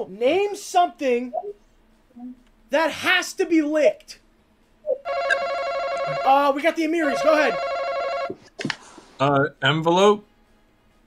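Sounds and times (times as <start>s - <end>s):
electronic buzz-in ringing tone: 5.0s - 6.5s, 7.1s - 8.4s.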